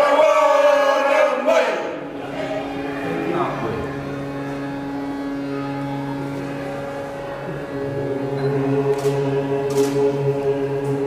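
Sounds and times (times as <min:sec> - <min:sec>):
harmonium drone: 0:00.0 - 0:11.0.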